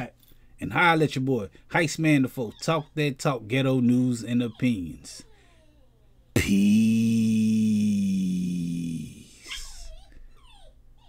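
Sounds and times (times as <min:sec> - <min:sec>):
dog whining: 0:05.1 - 0:06.3, 0:09.4 - 0:11.0.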